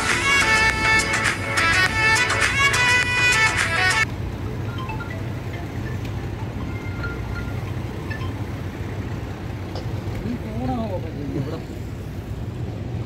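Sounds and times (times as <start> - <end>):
boat engine droning: 0.0 - 12.9
open-air noise: 0.0 - 13.0.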